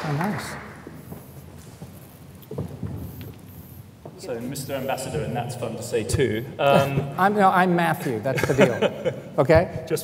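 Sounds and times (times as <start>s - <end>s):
people sitting on chairs: 0.0s - 7.4s.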